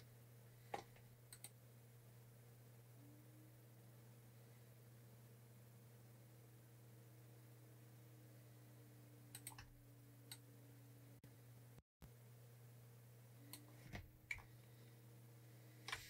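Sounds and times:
low electrical hum: 0.0s - 16.0s
computer clicks: 1.3s - 1.6s, 9.3s - 9.7s.

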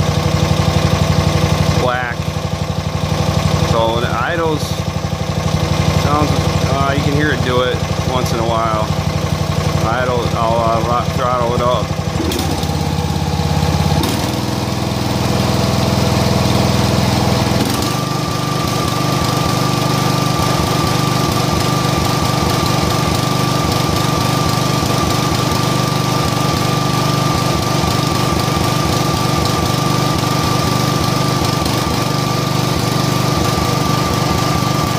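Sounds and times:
riding mower engine revving: 0.0s - 34.9s.

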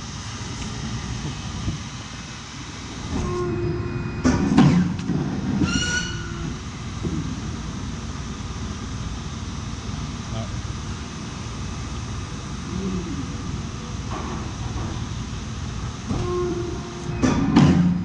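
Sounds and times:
hydraulic unit humming: 0.0s - 18.0s.

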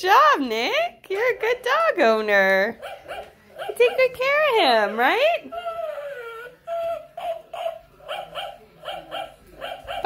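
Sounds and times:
dog yipping: 2.8s - 10.0s.

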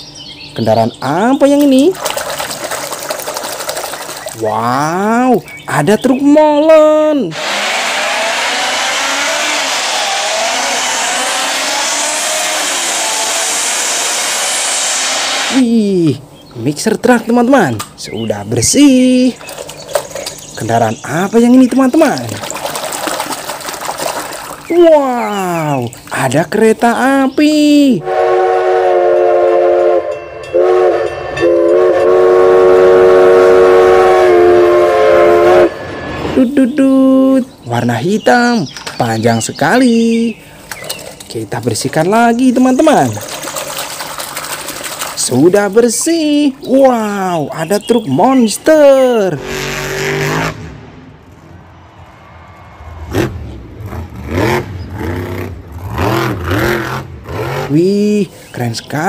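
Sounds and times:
steam locomotive whistle blasts: 7.3s - 15.6s, 28.0s - 36.6s, 49.4s - 50.7s
truck engine revving: 7.3s - 15.7s, 49.3s - 58.0s.

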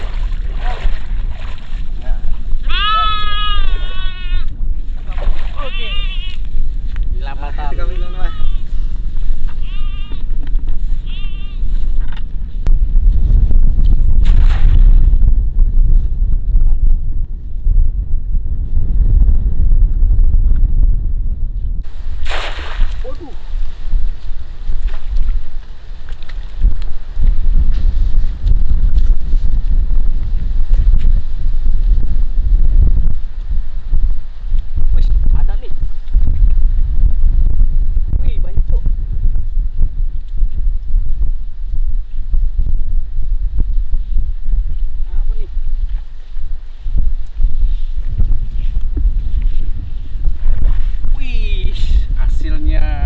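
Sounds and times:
wind rumble on microphone: 0.0s - 53.0s
goat bleating: 2.6s - 4.5s, 5.5s - 6.4s, 7.9s - 8.7s, 9.5s - 10.4s, 11.0s - 11.7s.

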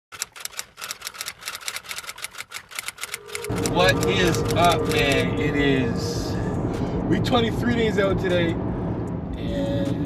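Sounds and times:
car cabin road rumble: 3.5s - 10.0s
man talking: 3.6s - 8.6s.

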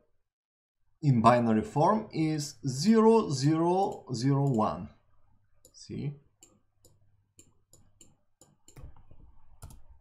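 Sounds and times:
computer mouse clicks: 3.8s - 4.7s, 6.4s - 10.0s.

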